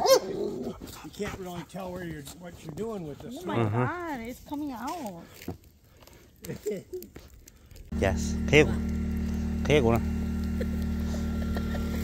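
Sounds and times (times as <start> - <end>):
wood fire crackling: 0.6 - 12.0
steady low hum: 7.7 - 12.0.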